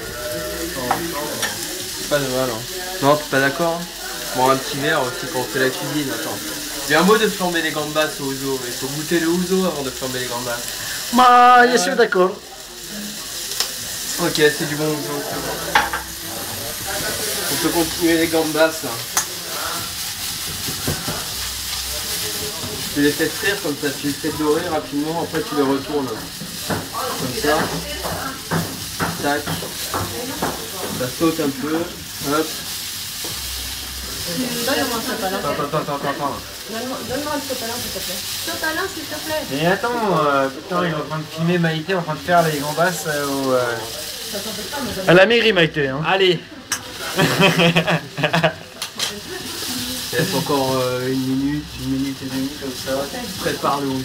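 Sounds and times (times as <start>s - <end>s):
prawns sizzling in a frying pan: 0.0s - 54.0s.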